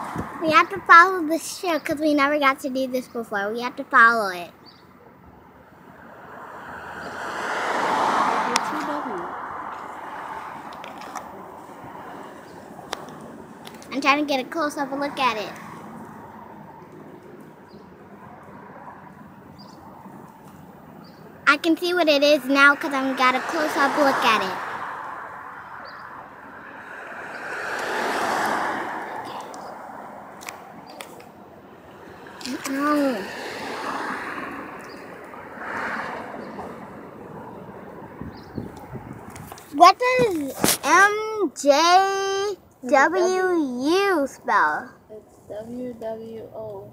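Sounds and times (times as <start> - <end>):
wind rushing through car window: 0.0 - 0.9, 32.8 - 41.0
car road and wind noise: 0.0 - 46.9.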